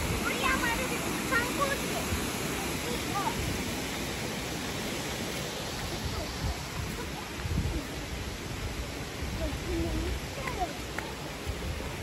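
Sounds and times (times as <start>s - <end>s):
water rushing: 0.0s - 12.0s.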